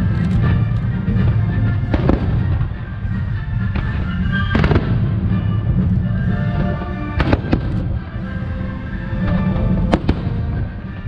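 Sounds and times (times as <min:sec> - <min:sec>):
fireworks bursting: 0:00.0 - 0:08.4, 0:09.2 - 0:11.0
steady low rumble: 0:00.0 - 0:11.0.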